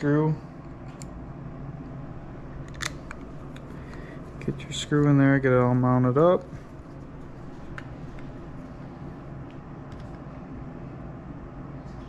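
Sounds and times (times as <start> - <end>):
steady low hum: 0.0 - 12.0
quiet handling sounds: 1.8 - 10.3.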